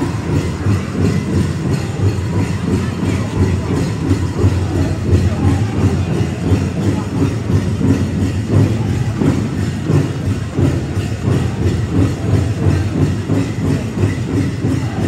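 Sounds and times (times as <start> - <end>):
steady drumbeat: 0.0 - 15.0.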